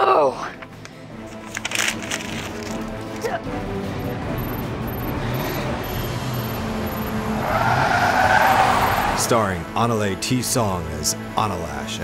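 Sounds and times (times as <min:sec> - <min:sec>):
tire screech: 0:05.2 - 0:09.4.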